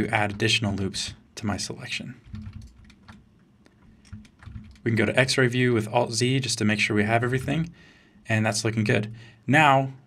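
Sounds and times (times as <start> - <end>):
person speaking: 0.0 - 2.7, 4.1 - 10.0
computer keyboard and mouse clicks: 0.2 - 1.2, 2.2 - 4.9.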